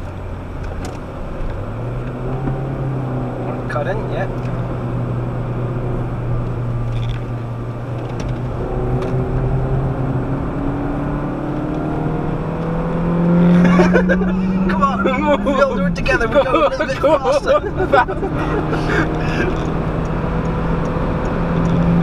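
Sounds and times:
car engine accelerating: 0.0 - 22.0
road noise: 0.0 - 22.0.

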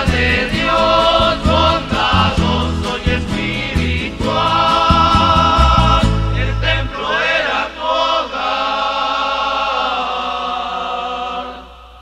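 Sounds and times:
men singing a hymn in harmony: 0.0 - 12.0.

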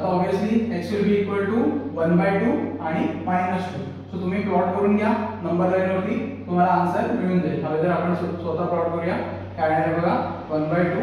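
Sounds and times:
man speaking: 0.0 - 11.0
steady low hum: 0.0 - 11.0.

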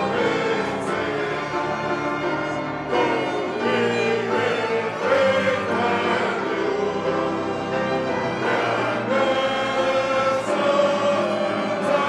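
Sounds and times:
choir singing a hymn: 0.0 - 12.0
piano: 0.0 - 12.0
violins: 0.0 - 12.0.

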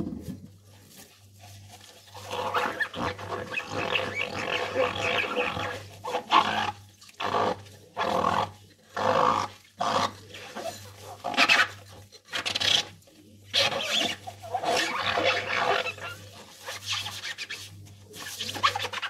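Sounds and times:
foam squelching: 0.0 - 19.0
rubber squeaking on wet glass: 2.0 - 19.0
gloved hands scrubbing glass: 13.5 - 19.0.

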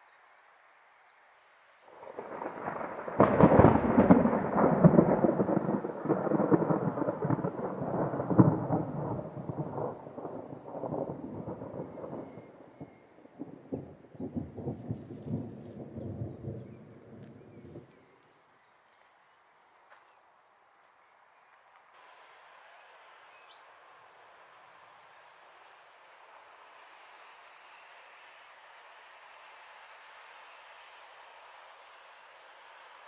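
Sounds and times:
loud thunder crack: 1.9 - 17.8
rolling thunder: 1.9 - 17.9.

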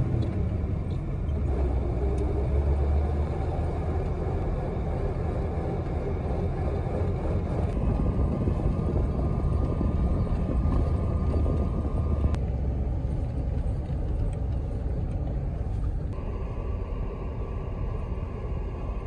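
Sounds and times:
vehicle engine and road rumble: 0.0 - 19.0
faint steady whine: 15.6 - 19.0.

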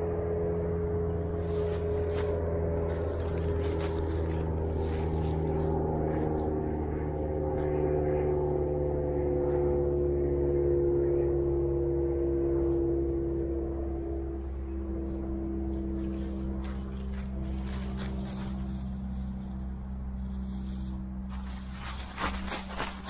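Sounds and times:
engine drone: 0.0 - 23.0
dry leaves rustling underfoot: 1.1 - 7.6, 16.0 - 23.0.

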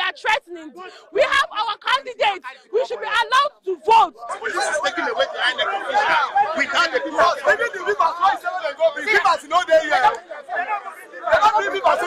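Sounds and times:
men talking in a crowd: 0.0 - 12.0.

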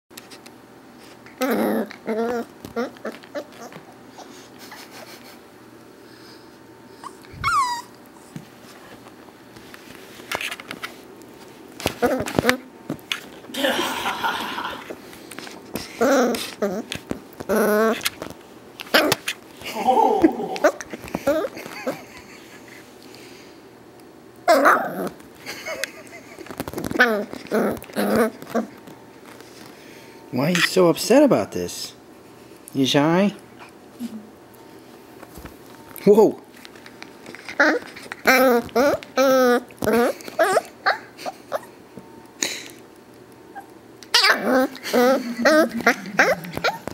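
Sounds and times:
dog whining and grumbling: 1.2 - 4.9, 7.0 - 8.3, 12.0 - 12.7, 15.9 - 18.1, 18.9 - 22.2, 24.4 - 25.2, 26.9 - 28.8, 37.4 - 41.8, 43.5 - 46.9
puppy high falling cry: 7.0 - 8.0, 44.1 - 46.9
puppy squeak: 7.0 - 8.0.

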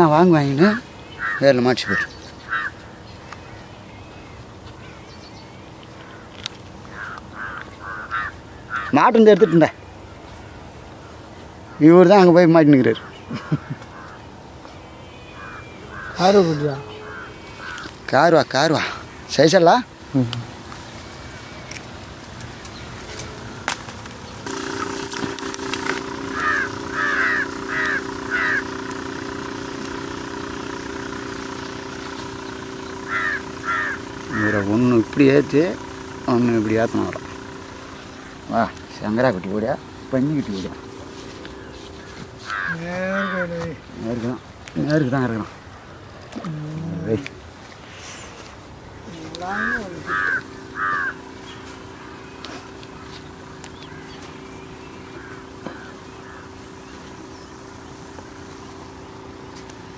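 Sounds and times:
idling engine drone: 0.0 - 59.9
open-air background noise: 0.0 - 59.9
crow cawing: 0.6 - 3.0, 6.0 - 9.8, 13.0 - 14.3, 15.3 - 19.0, 26.3 - 29.0, 31.8 - 36.3, 40.7 - 43.8, 49.2 - 56.9.

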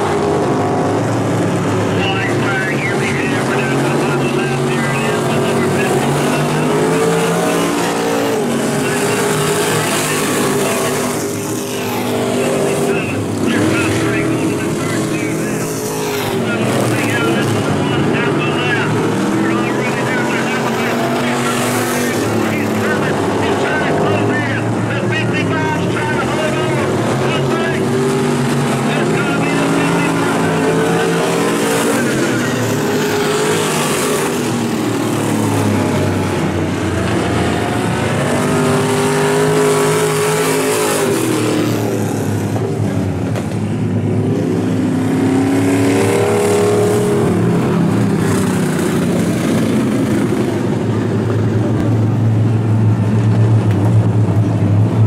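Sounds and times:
race car engines passing: 0.0 - 55.0.

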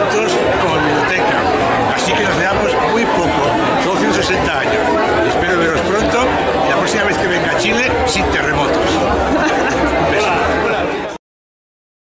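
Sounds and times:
many people talking at once: 0.0 - 11.2.

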